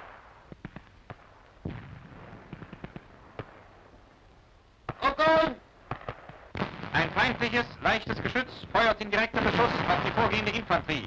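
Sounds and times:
faint background hiss: 0.0s - 11.0s
gunshots: 4.9s - 10.8s.

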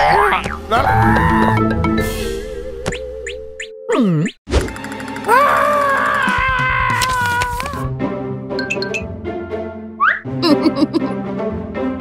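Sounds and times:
music: 0.7s - 3.8s, 4.6s - 12.0s.

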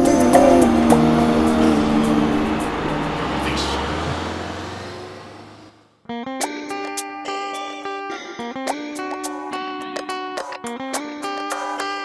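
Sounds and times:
bus engine rumbling: 0.0s - 5.8s.

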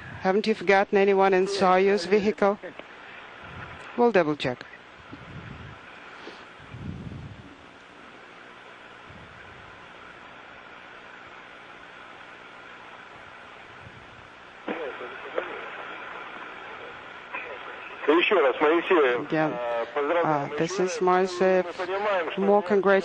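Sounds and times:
radio link hiss: 0.0s - 6.9s, 7.5s - 23.0s.

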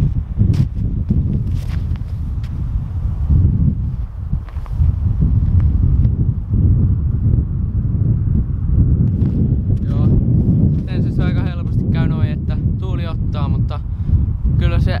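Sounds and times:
footsteps on snow: 0.0s - 5.8s
wind buffeting microphone: 0.0s - 15.0s.

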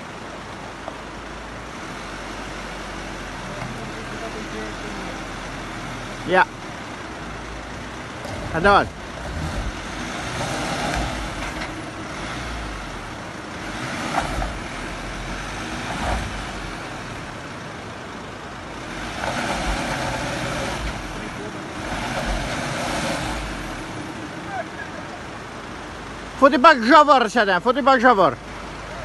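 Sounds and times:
van engine running: 0.0s - 29.0s.

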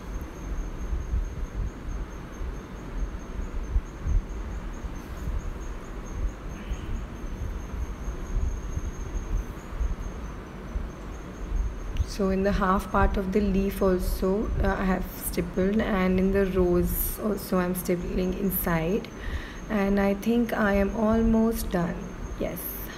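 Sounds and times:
high-pitched insect trill: 0.0s - 22.9s.

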